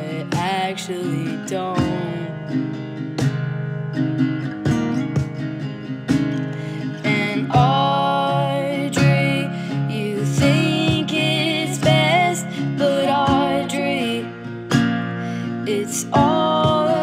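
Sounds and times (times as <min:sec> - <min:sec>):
person singing: 0:00.0 - 0:02.7, 0:06.5 - 0:14.5, 0:15.1 - 0:17.0
acoustic guitar strumming: 0:00.0 - 0:17.0.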